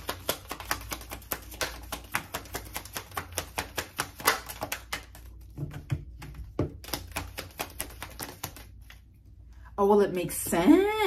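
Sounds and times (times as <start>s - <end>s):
cards being shuffled: 0.0s - 9.0s.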